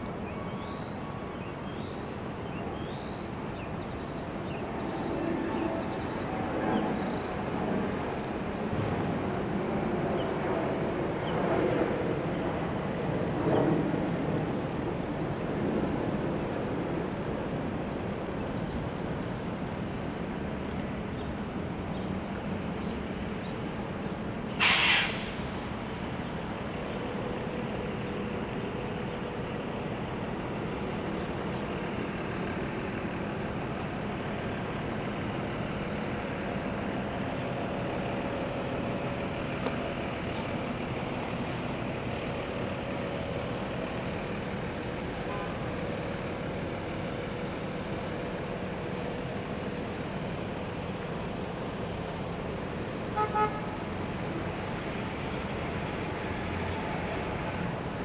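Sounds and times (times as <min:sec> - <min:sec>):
city street traffic: 0:00.0 - 0:58.0
vehicle horn toots: 0:53.2 - 0:53.8.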